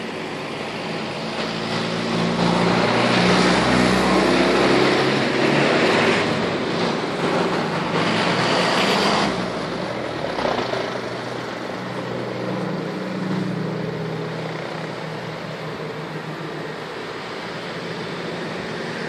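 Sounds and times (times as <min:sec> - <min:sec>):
propeller aircraft engines droning: 0:00.0 - 0:19.0
wind: 0:00.0 - 0:19.0.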